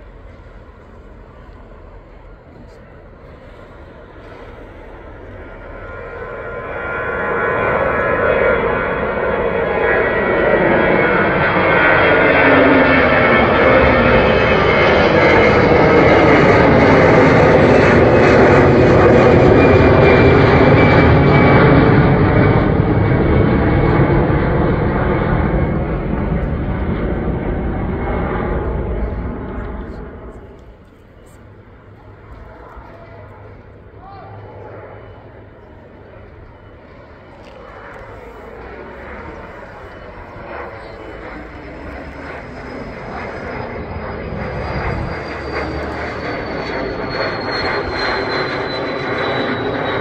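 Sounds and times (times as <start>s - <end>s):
jet plane passing overhead: 0.0s - 50.0s.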